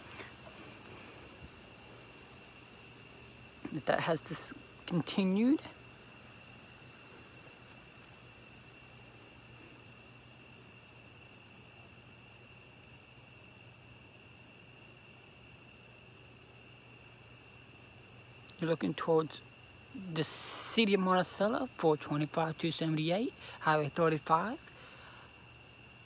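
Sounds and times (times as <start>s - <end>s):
night insects trilling: 0.0s - 26.0s.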